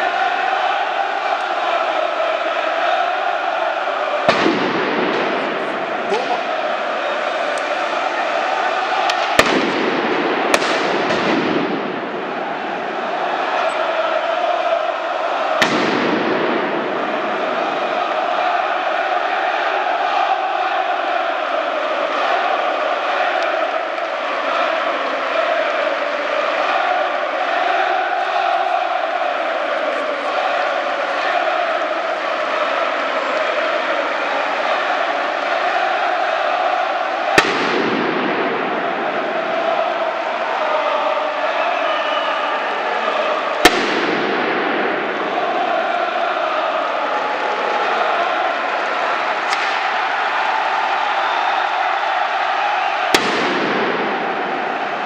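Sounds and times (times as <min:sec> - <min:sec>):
stadium crowd singing and chanting: 0:00.0 - 0:55.0
firecracker bangs: 0:04.2 - 0:06.6, 0:08.9 - 0:12.4, 0:15.5 - 0:17.8, 0:37.3 - 0:39.3, 0:43.6 - 0:45.3, 0:49.5 - 0:50.0, 0:53.0 - 0:55.0.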